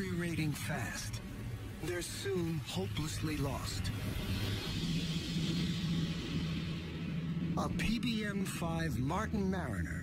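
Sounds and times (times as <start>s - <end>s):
low drone: 0.0s - 10.0s
rushing hiss: 1.8s - 7.8s.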